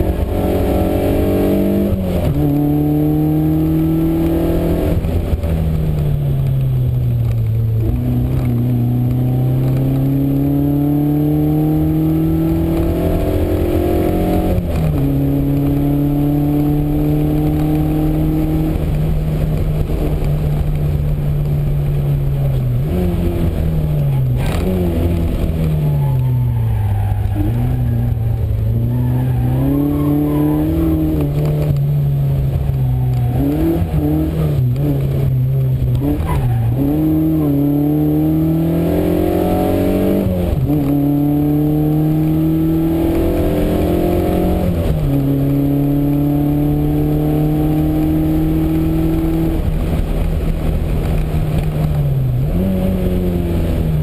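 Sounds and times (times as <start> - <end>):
car engine revving from inside cabin: 0.0 - 5.3, 7.8 - 19.0, 28.6 - 49.7.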